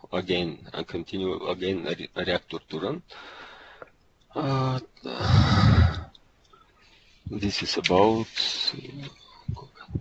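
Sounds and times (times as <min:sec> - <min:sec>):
loud exhale into microphone: 0:05.2 - 0:06.1.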